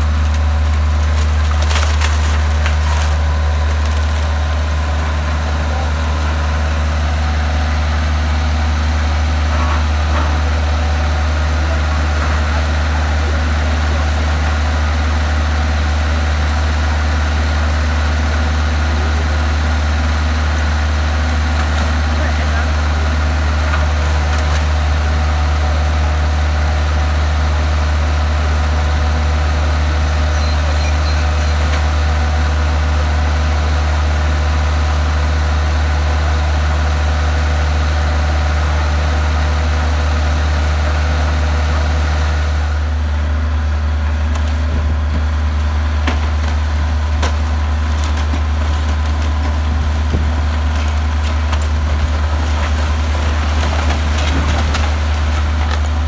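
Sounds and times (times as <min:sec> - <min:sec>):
excavator diesel engine drone: 0:00.0 - 0:56.0.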